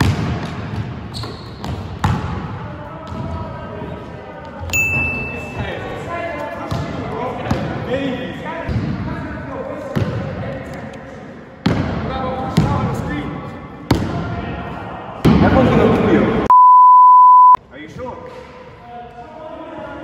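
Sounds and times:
voices in sports hall: 0.0s - 16.5s, 17.6s - 20.0s
censor bleep: 16.5s - 17.6s.

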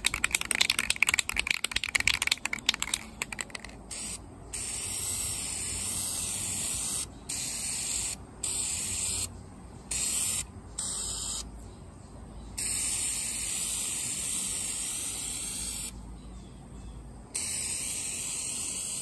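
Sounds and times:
spray paint can hissing: 0.0s - 9.3s, 9.9s - 11.5s, 12.6s - 16.0s, 17.3s - 19.0s.

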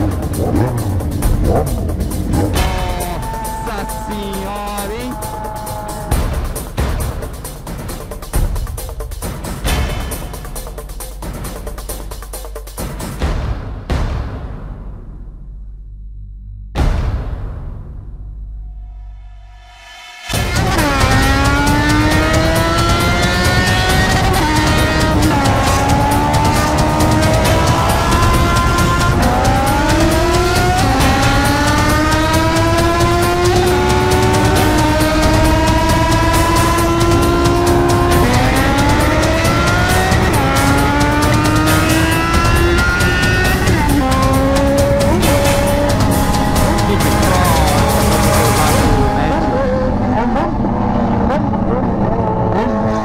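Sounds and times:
motorcycle engine accelerating: 0.0s - 8.4s, 20.3s - 53.0s.

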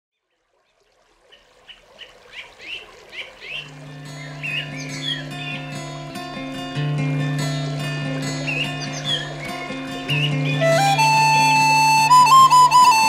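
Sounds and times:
birds chirping: 0.7s - 6.6s, 7.2s - 13.0s.

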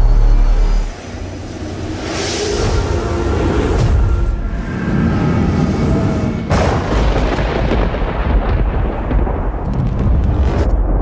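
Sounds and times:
deep thunder-like rumble: 2.4s - 11.0s.

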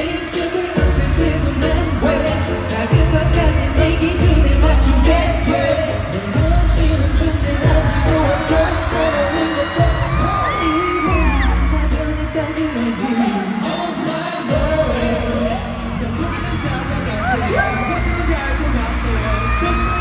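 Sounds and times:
man singing into a microphone: 0.0s - 20.0s
pop backing track with bass beats: 0.0s - 20.0s.

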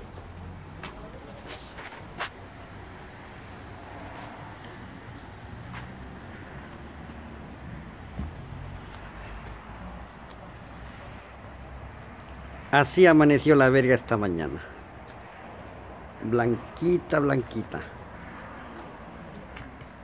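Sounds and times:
low street rumble: 0.0s - 20.0s.

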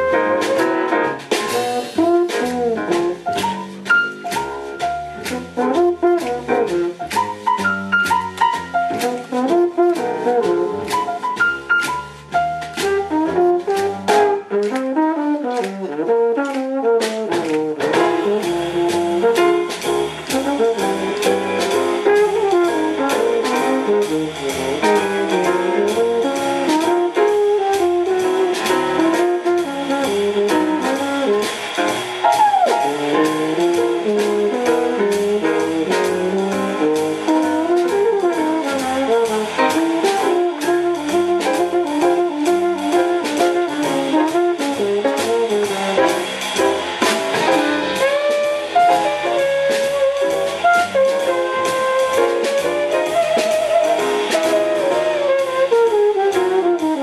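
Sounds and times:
drums with cymbal: 0.0s - 57.0s
piano: 0.0s - 57.0s
upright bass: 0.0s - 57.0s
trombone solo: 5.2s - 7.2s, 8.9s - 10.9s, 12.8s - 57.0s.

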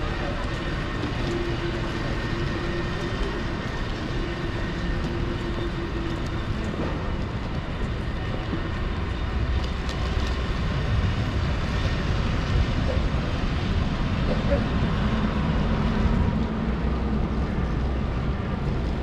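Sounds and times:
city traffic rumble: 0.0s - 19.0s.

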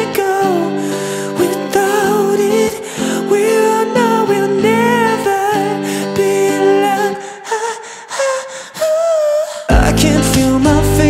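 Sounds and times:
guitar: 0.0s - 11.0s
man singing: 0.0s - 11.0s.

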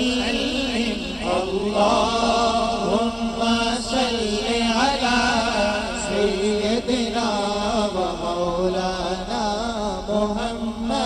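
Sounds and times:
men singing devotional song: 0.0s - 11.0s.

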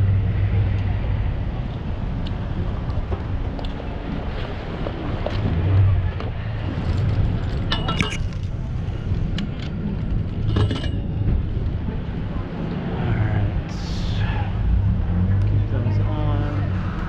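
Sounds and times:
bicycle road noise: 0.0s - 17.0s
wind rumble on microphone: 0.0s - 17.0s
bike metallic rattles: 6.8s - 8.6s.

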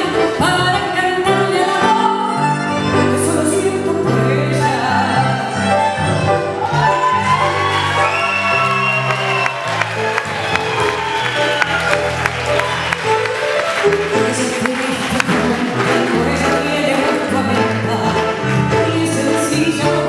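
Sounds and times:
woman singing: 0.0s - 5.8s, 14.1s - 20.0s
tango orchestra playing: 0.0s - 20.0s.

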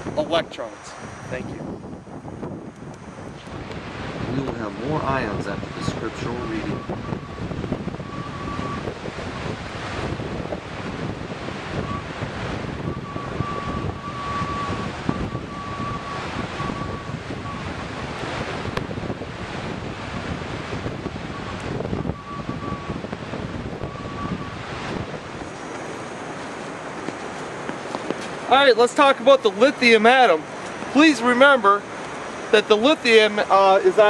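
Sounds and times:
wind buffeting microphone: 0.0s - 34.0s
waves breaking on a shore: 3.0s - 34.0s
thin faint whistle: 21.4s - 23.0s, 23.8s - 24.6s.

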